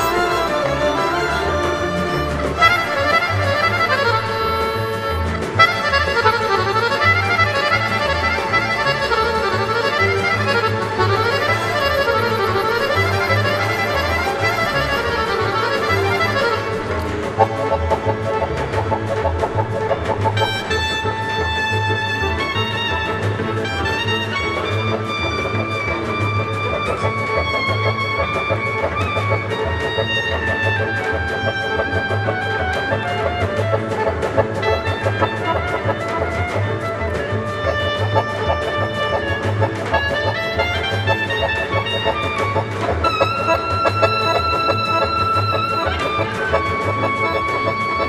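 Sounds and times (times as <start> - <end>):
clarinet melody: 0.0 - 48.0
folk orchestra playing: 0.0 - 48.0.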